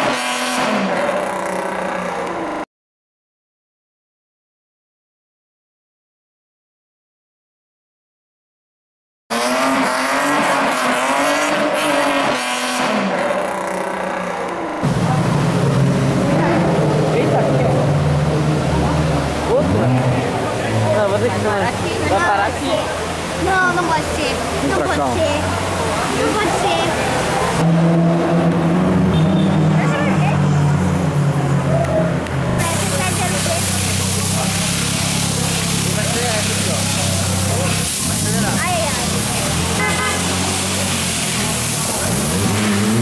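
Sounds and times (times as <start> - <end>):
car engine rumble: 9.3 - 43.0
car tyres squealing: 16.2 - 43.0.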